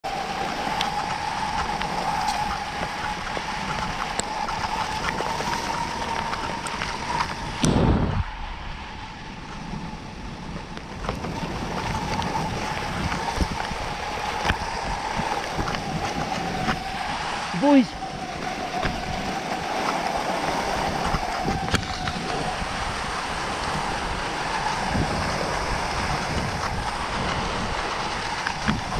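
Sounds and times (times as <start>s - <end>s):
wind rushing over microphone: 0.0s - 28.9s
skis hissing over snow: 0.1s - 8.2s, 9.3s - 28.9s.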